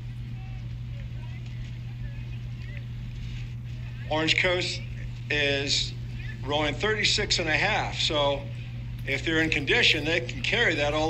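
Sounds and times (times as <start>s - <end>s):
faint distant voices: 0.0s - 11.0s
steady low hum: 0.0s - 11.0s.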